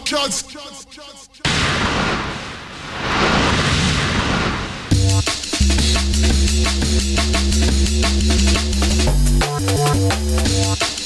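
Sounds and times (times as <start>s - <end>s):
rushing rumbling noise effect: 1.8s - 5.1s
deep bass: 4.9s - 10.8s.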